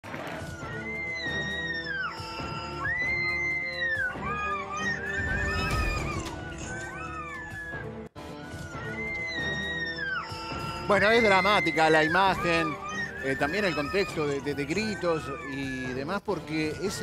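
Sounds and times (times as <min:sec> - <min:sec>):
people screaming in panic: 0:00.6 - 0:08.0, 0:08.8 - 0:15.8.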